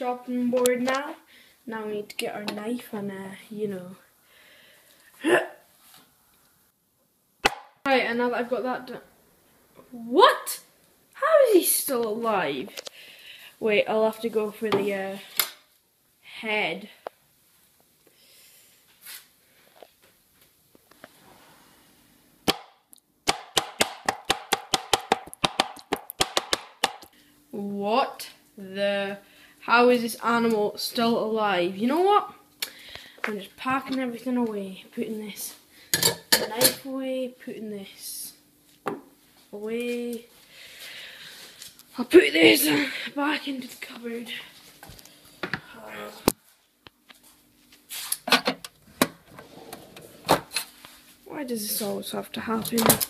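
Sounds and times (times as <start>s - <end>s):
knife chopping on plastic board: 23.3s - 27.0s.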